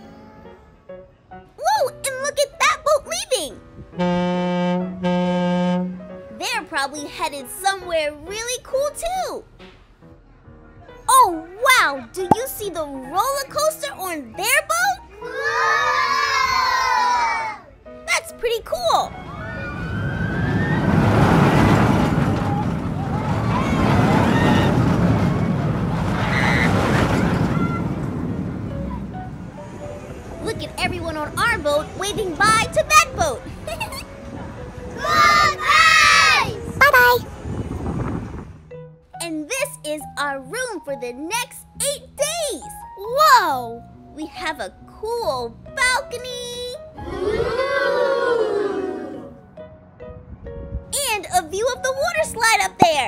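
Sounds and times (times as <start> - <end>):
deep ship horn blasts: 3.9 - 6.2
wind blowing across microphone: 19.9 - 35.6, 36.3 - 38.7, 50.2 - 50.9.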